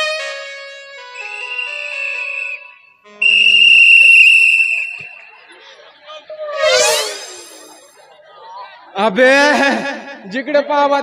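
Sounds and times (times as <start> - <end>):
whistle blasts: 1.2 - 5.4.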